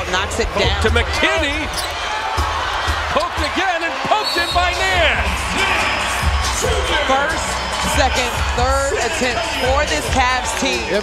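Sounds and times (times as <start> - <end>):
commentator voice: 0.0 - 1.7
arena crowd: 0.0 - 11.0.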